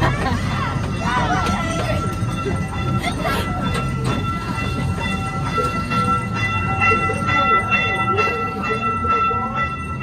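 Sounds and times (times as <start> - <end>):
small train rumbling: 0.0 - 10.0.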